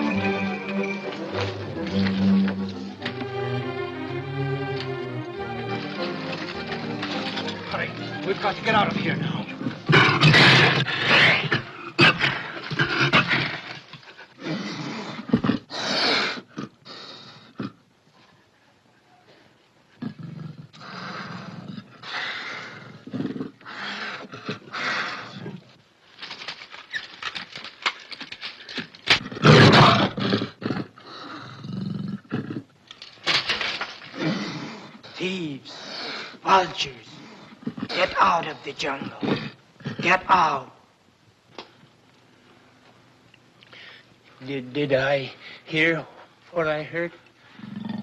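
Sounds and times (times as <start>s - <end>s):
panther snarling and roaring: 6.0s - 17.8s, 29.1s - 32.7s, 34.0s - 40.6s, 47.5s - 48.0s.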